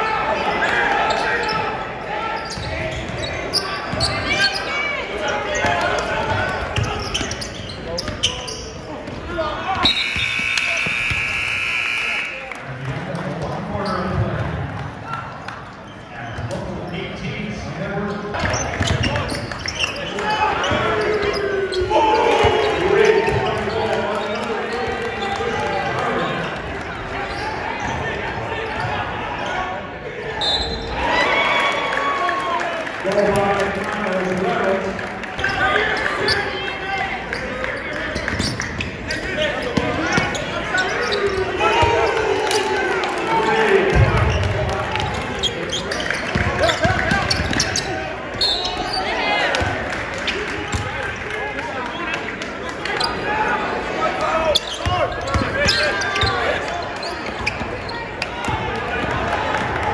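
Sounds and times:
arena buzzer: 9.9 - 12.4
people shouting: 41.4 - 44.0.

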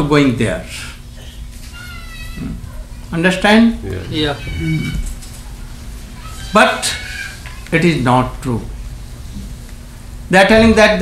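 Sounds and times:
high thin wavering cry: 4.0 - 5.2.

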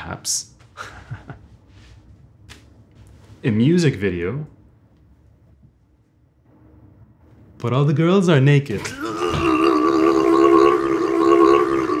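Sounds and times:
man singing long note: 9.1 - 12.0.

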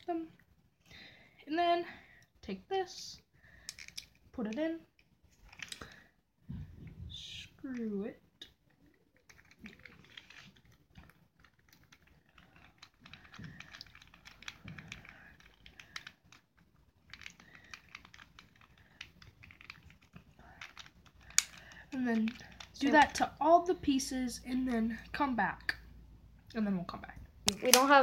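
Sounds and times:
clicks and scrapes of plastic: 3.6 - 6.9, 7.7 - 23.3.

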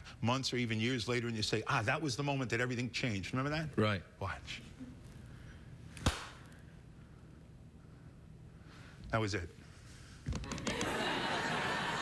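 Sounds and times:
sharp hand clap: 6.0 - 6.4.

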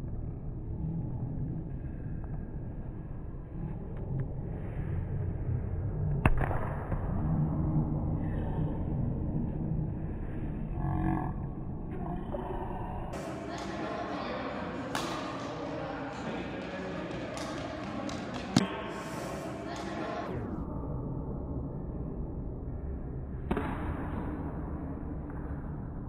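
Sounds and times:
low drawn-out slowed sounds: 0.0 - 13.6, 20.3 - 26.0.

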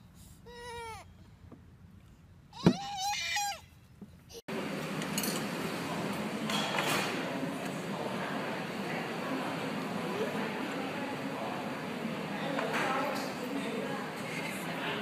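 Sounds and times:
toddler crying: 0.5 - 1.1, 2.6 - 3.6.

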